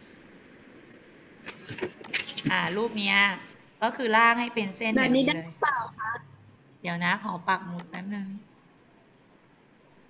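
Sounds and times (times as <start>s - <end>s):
woman speaking: 2.4s - 8.5s.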